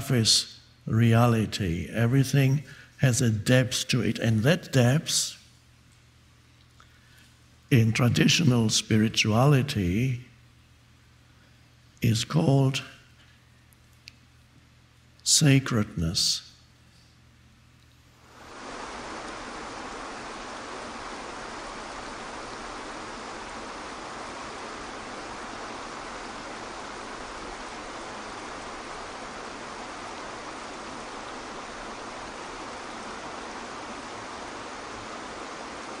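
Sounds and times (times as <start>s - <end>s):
waterfall pouring into pool: 18.2s - 36.0s.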